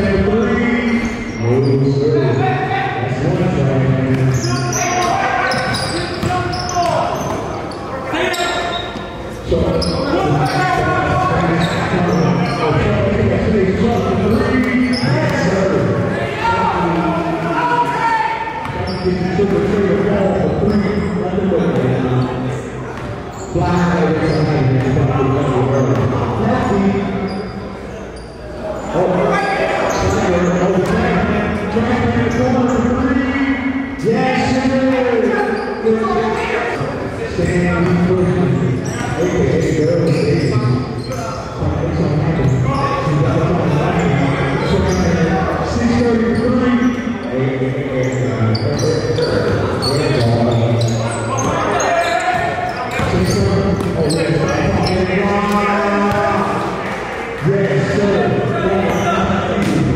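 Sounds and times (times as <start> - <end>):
voices echoing in hall: 0.0 - 59.9
basketball bouncing on gym floor: 5.6 - 7.5.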